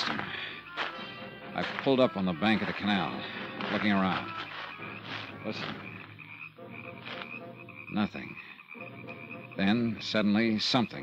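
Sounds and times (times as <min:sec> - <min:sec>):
frogs croaking: 0:00.0 - 0:11.0.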